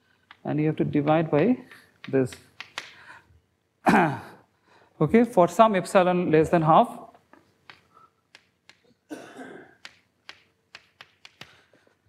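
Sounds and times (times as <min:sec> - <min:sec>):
man coughing: 0:03.8 - 0:04.5, 0:09.0 - 0:09.8.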